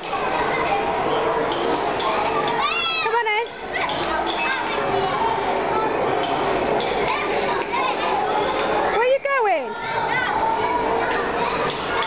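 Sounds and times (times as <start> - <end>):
children's voices at play: 0.0 - 12.0.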